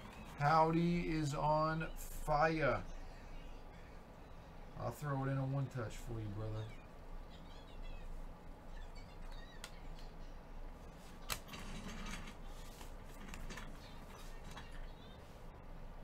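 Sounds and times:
soft card rustling: 10.8s - 15.4s.

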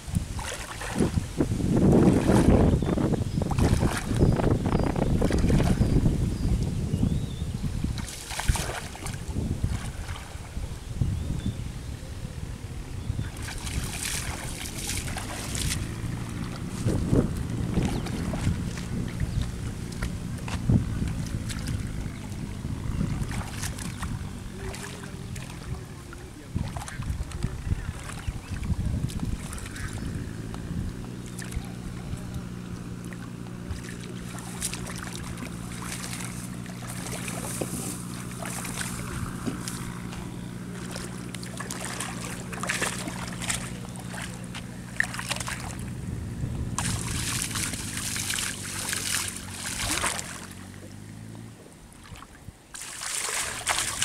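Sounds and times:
water sloshing and splashing: 0.0s - 6.8s, 7.6s - 10.9s, 13.0s - 54.0s
low engine drone: 0.0s - 54.0s.

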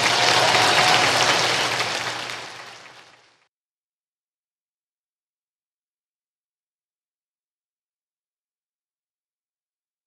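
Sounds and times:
audience applauding: 0.0s - 3.5s.

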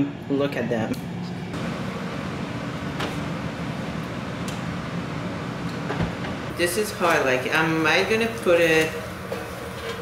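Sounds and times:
mechanical fan hum: 0.0s - 10.0s.

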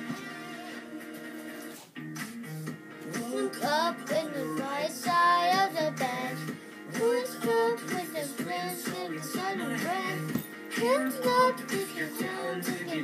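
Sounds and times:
backing music with guitar: 0.0s - 13.0s
child singing: 3.2s - 13.0s.

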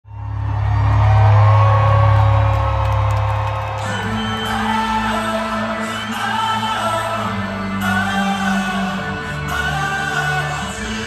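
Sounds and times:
live rock band music: 3.6s - 11.0s.

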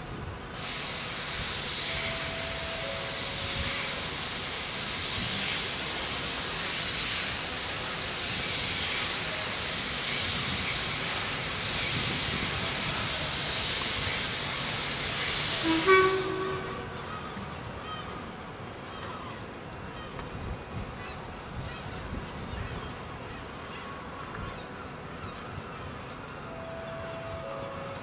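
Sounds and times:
steam locomotive hissing steam: 0.4s - 18.3s.

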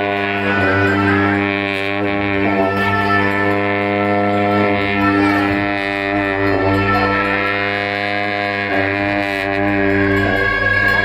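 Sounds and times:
ritual horns droning: 0.0s - 11.0s.

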